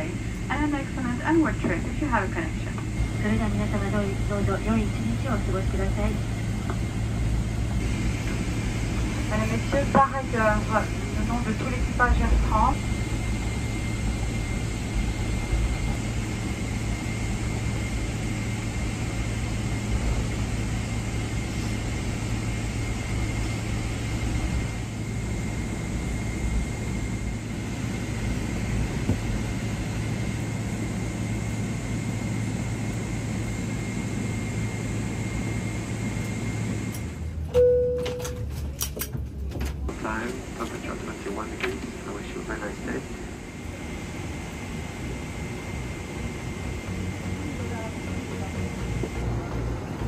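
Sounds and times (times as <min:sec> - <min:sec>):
aircraft cabin engine rumble: 0:00.0 - 0:50.0.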